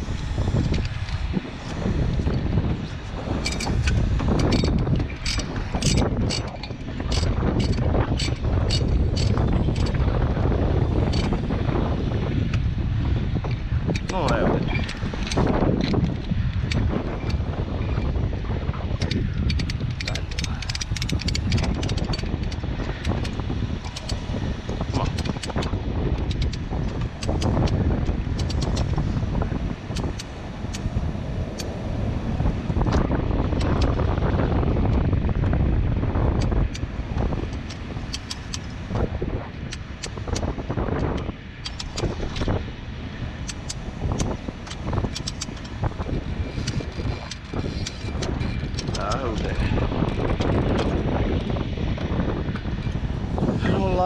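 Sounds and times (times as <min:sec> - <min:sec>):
wind rumbling on microphone: 0:00.0 - 0:54.0
metal hooks clicking and clinking: 0:03.4 - 0:10.0, 0:19.0 - 0:24.2.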